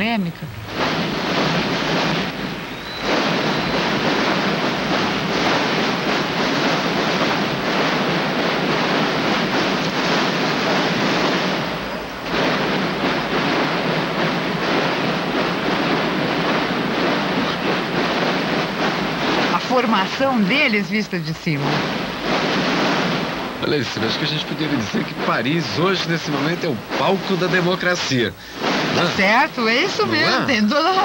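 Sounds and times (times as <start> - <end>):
massed snare drums rattling: 0.0 - 31.0.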